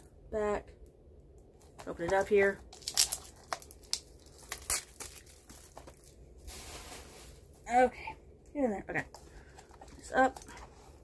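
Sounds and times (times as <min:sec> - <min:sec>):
plastic wrapping crinkling: 0:01.7 - 0:07.7.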